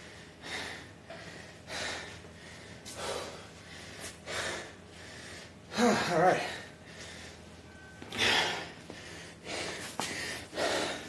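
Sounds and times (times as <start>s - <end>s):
man breathing hard: 0.0s - 11.0s.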